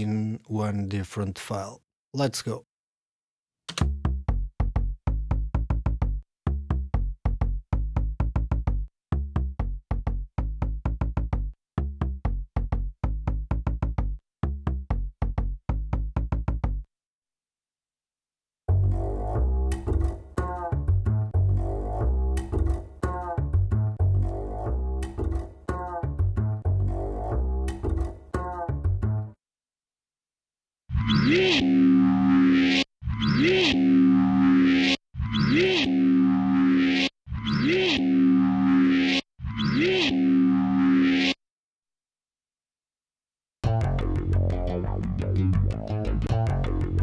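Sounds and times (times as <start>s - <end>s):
upright bass loop: 18.7s - 29.3s, 43.6s - 47.0s
distorted bass phrase: 31.0s - 41.4s, 43.6s - 47.0s.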